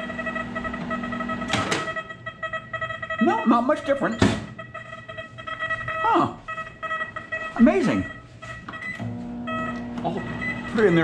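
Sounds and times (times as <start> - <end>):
electronic tones: 0.0 - 11.0
microwave oven clicks: 1.5 - 2.0.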